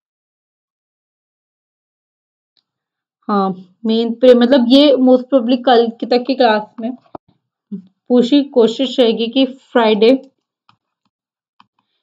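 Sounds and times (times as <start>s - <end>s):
woman speaking: 3.3s - 10.2s.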